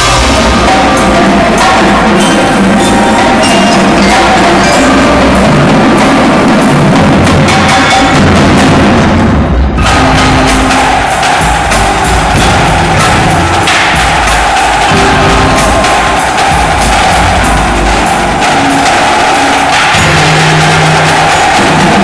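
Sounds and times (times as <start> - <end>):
mallet keyboards: 0.0 - 8.6, 9.8 - 22.0
marching drumline: 0.0 - 22.0.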